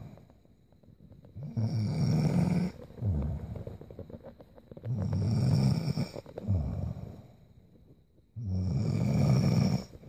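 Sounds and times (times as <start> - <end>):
woman snoring: 1.4 - 4.1, 4.8 - 7.3, 8.4 - 10.0.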